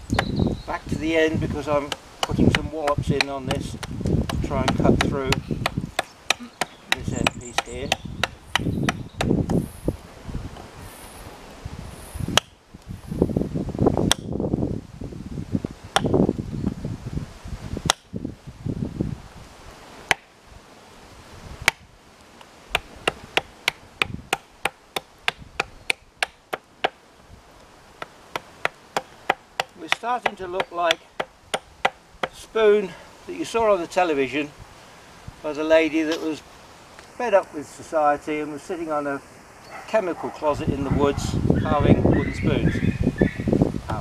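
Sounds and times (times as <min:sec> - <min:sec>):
wind rumble on microphone: 0:00.0 - 0:06.1, 0:06.8 - 0:22.0, 0:22.7 - 0:24.4, 0:25.3 - 0:26.3, 0:39.6 - 0:44.0
hatchet chopping wood: 0:01.8 - 0:09.6, 0:12.3 - 0:12.6, 0:14.0 - 0:14.4, 0:15.9 - 0:16.2, 0:17.8 - 0:18.1, 0:20.1 - 0:20.3, 0:21.6 - 0:21.9, 0:22.7 - 0:27.0, 0:28.0 - 0:32.4.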